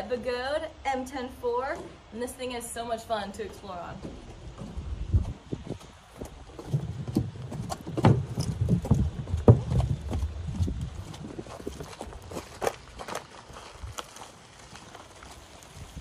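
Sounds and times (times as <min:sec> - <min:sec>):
wheel knocking on wooden planks: 0:06.5 - 0:10.8.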